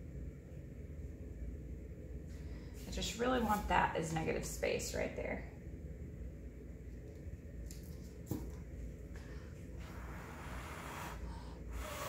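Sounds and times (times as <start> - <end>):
person blowing puffs of breath: 9.9 - 12.0.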